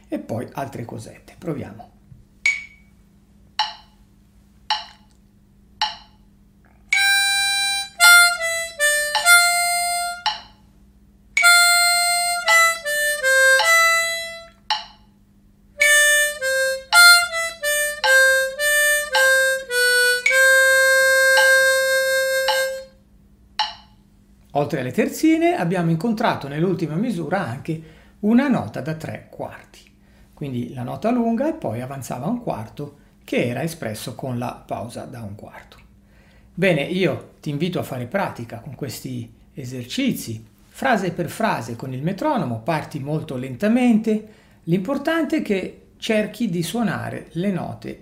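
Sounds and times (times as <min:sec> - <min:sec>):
metronome beeps: 0:02.5 - 0:02.9, 0:04.7 - 0:05.0, 0:05.8 - 0:06.2, 0:06.9 - 0:10.6, 0:14.7 - 0:15.1, 0:16.9 - 0:22.8, 0:23.6 - 0:24.0
harmonica playing: 0:06.9 - 0:10.5, 0:11.4 - 0:14.6, 0:15.8 - 0:23.0.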